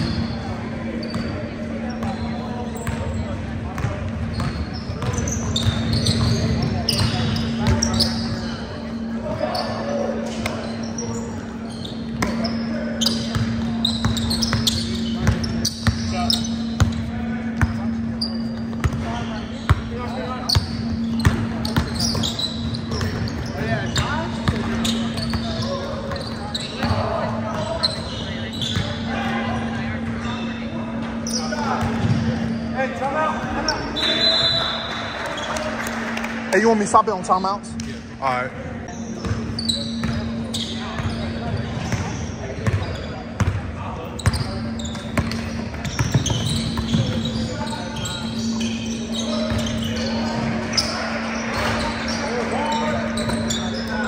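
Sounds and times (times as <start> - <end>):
sneakers squeaking: 0.0 - 54.0
players calling out: 44.1 - 54.0.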